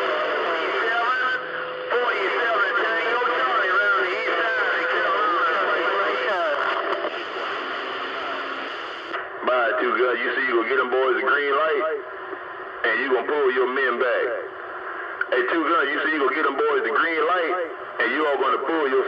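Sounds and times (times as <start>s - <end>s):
garbled radio voices: 0.0s - 19.0s
steady radio tone: 0.0s - 19.0s.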